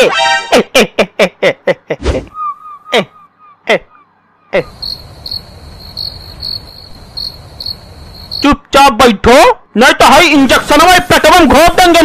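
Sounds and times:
low steady hiss: 0:04.2 - 0:12.0
person speaking: 0:04.5 - 0:04.8, 0:08.4 - 0:12.0
crickets chirping: 0:04.6 - 0:08.5.

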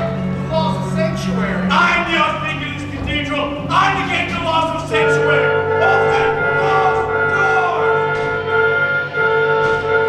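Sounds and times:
orchestral chord with winds: 0:00.0 - 0:10.0.

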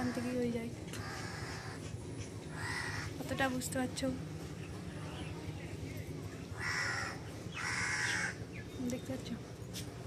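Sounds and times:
crow cawing: 0:00.0 - 0:01.9, 0:02.5 - 0:03.2, 0:06.6 - 0:08.4.

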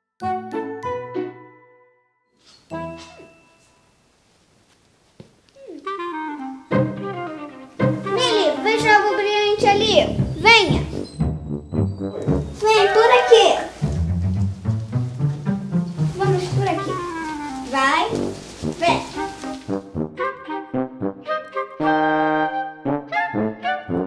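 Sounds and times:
instrumental background music: 0:00.2 - 0:03.9, 0:05.7 - 0:24.0
child's voice: 0:08.1 - 0:11.0, 0:12.6 - 0:13.8, 0:16.1 - 0:19.4.

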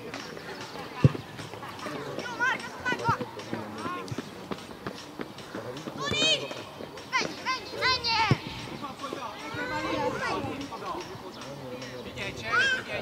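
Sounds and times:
people shouting and calling: 0:05.8 - 0:11.2, 0:12.4 - 0:13.0.

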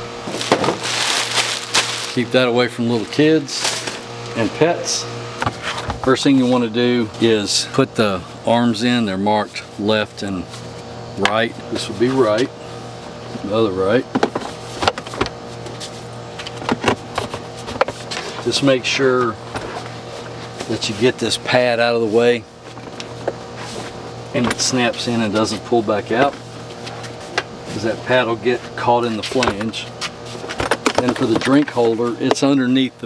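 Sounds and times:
plastic bag crinkling: 0:00.3 - 0:02.3.

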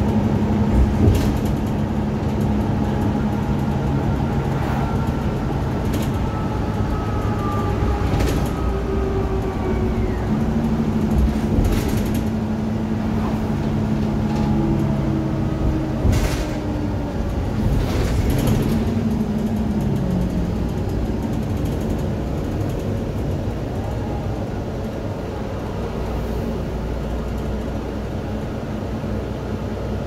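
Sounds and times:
bus engine and road noise: 0:00.0 - 0:30.0.

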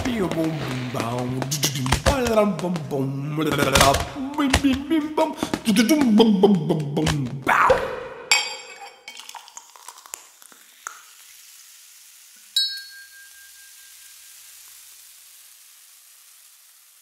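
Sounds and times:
faint steady hiss: 0:09.0 - 0:17.0
bright ringing ding: 0:12.6 - 0:14.3.

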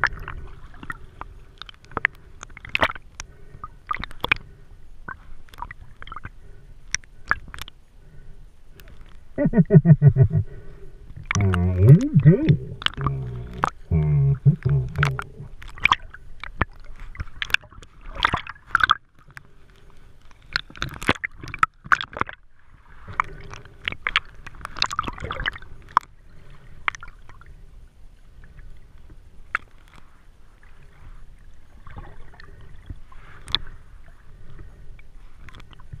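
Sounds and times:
water sloshing and gurgling: 0:00.0 - 0:36.0.

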